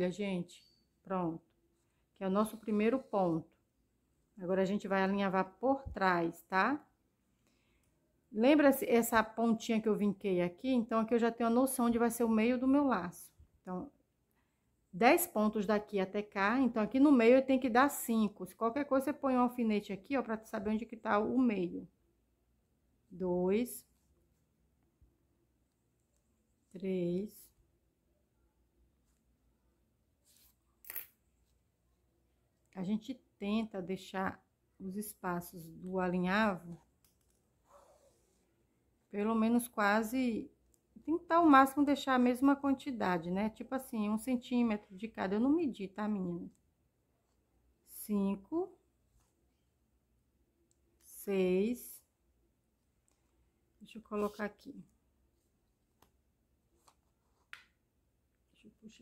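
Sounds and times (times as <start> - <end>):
ribbon rustling: 30.1 - 31.7.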